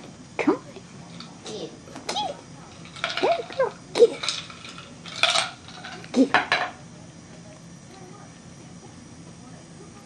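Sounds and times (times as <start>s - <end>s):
toy rattling and clinking: 2.7s - 6.7s.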